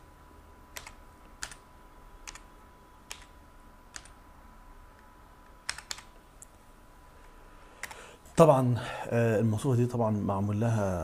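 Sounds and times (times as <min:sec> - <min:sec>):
keyboard keystrokes: 0:00.7 - 0:01.6, 0:02.2 - 0:02.5, 0:03.1 - 0:03.3, 0:03.9 - 0:04.2, 0:05.6 - 0:06.1.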